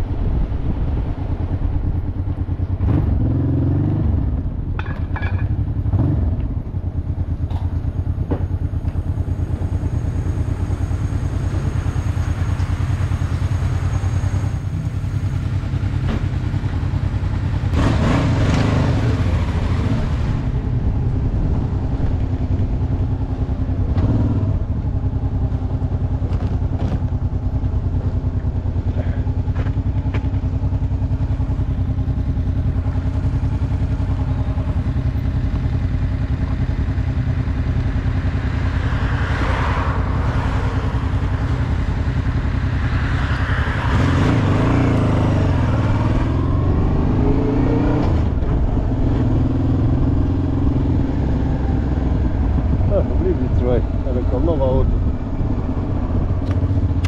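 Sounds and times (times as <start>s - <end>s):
motorcycle engine running: 0.1s - 39.2s.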